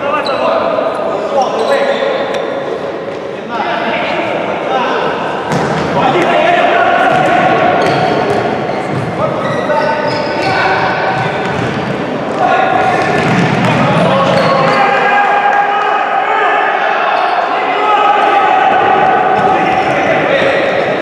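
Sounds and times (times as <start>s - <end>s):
voices shouting in a sports hall: 0.0s - 21.0s.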